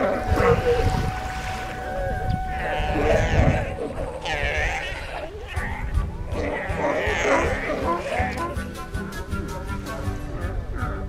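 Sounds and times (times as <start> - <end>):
low rumble: 0.0 - 6.4
sea lions calling: 0.0 - 8.8.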